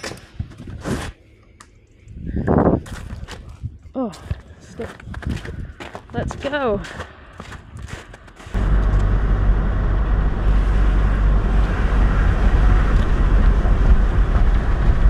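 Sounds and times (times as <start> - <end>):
car engine and road rumble: 8.5 - 15.0.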